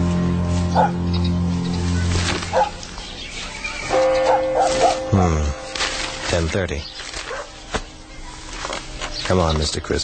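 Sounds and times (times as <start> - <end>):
low music drone: 0.0 - 9.9
dog barking: 0.8 - 1.0, 2.5 - 2.8, 4.2 - 5.0, 7.3 - 7.6.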